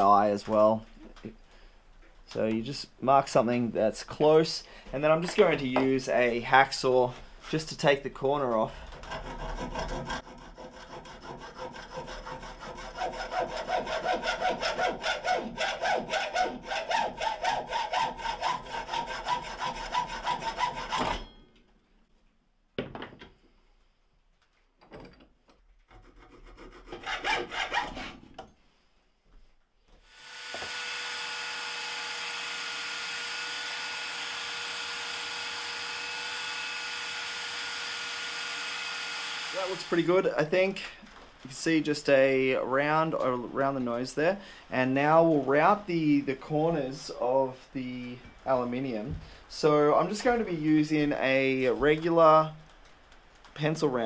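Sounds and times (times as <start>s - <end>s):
hand file rasping: 8.8s - 21.1s, 25.9s - 28.3s
hacksaw cutting metal bar: 9.0s - 21.3s, 25.9s - 28.2s, 30.4s - 39.8s
electric belt sander whining: 30.1s - 40.1s.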